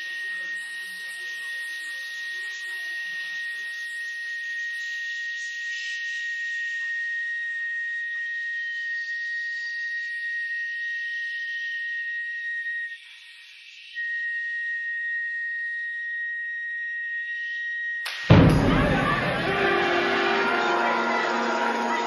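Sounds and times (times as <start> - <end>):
low instruments: 18.1 - 22.0
wind ensemble holding high note: 18.1 - 22.0.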